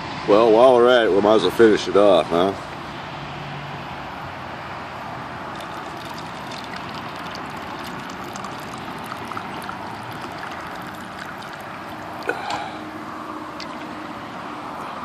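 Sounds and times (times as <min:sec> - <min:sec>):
steady background noise: 0:00.0 - 0:15.0
liquid pouring into plastic cup: 0:05.5 - 0:12.6, 0:13.5 - 0:14.0.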